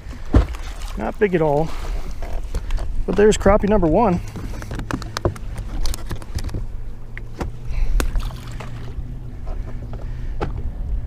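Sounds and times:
waves rumbling against boat hull: 0.0 - 11.0
fishing tackle clicks and knocks: 2.1 - 10.7.

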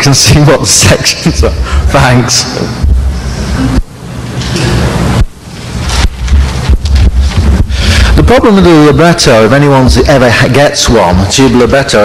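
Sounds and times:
microphone handling noise: 2.7 - 8.6.

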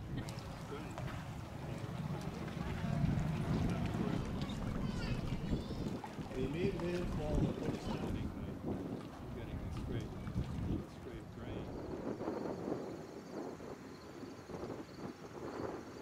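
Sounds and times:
wind rumbling on microphone: 0.0 - 16.0
people talking indistinctly: 0.2 - 11.9.

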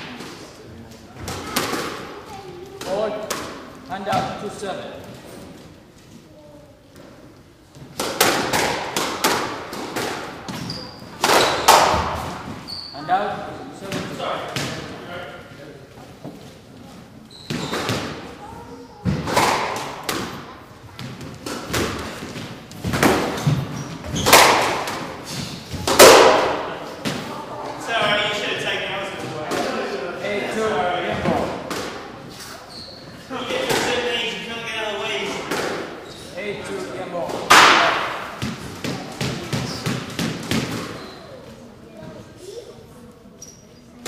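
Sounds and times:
squash ball hits: 1.2 - 4.4, 7.9 - 12.6, 13.8 - 15.0, 17.4 - 18.3, 19.0 - 27.4, 29.4 - 29.9, 31.1 - 32.2, 35.3 - 36.0, 37.2 - 41.1.

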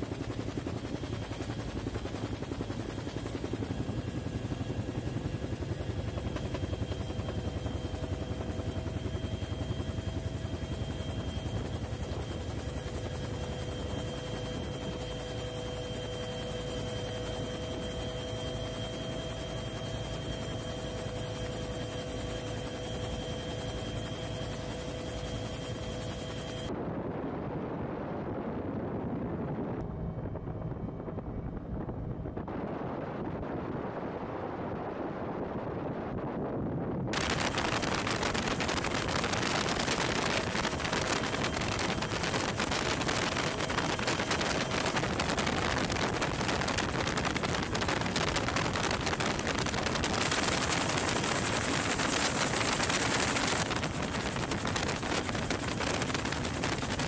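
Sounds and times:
helicopter rotor and engine: 0.0 - 57.0
wind on microphone: 25.4 - 57.0.

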